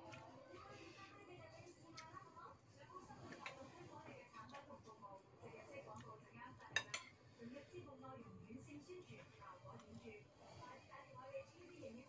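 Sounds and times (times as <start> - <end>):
faint background voices: 0.0 - 12.0
metal spoon clinking on bowl: 6.7 - 7.1.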